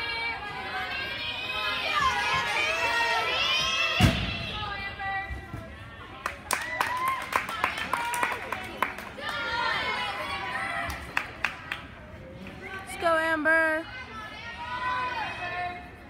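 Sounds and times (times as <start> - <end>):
crowd voices and cheering: 0.0 - 16.0.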